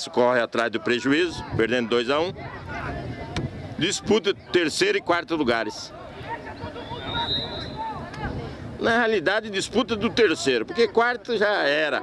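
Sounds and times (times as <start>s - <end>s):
wind rumble on microphone: 1.1s - 11.1s.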